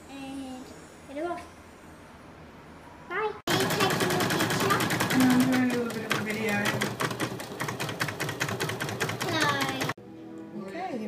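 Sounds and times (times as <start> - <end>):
embroidery machine needle clattering: 3.5 - 10.0.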